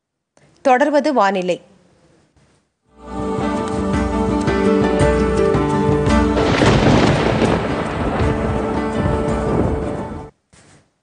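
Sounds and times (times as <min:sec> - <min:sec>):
music sting: 0:03.0 - 0:10.3
thunder rumbling: 0:06.1 - 0:10.3
rain: 0:06.4 - 0:10.3.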